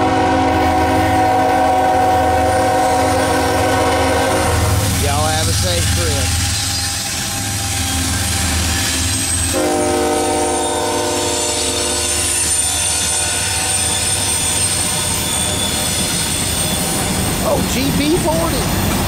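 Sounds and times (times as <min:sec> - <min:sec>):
train air horn: 0:00.0 - 0:05.3, 0:08.8 - 0:16.2
rolling train cars: 0:00.0 - 0:19.0
locomotive engine rumble: 0:00.6 - 0:11.0.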